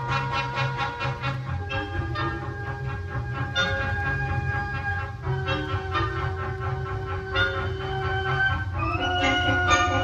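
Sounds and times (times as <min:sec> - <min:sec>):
wind band playing chords: 0:00.0 - 0:10.0.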